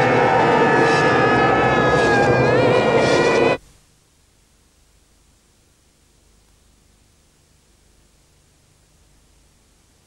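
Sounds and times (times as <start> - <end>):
loud engine drone: 0.0 - 3.6.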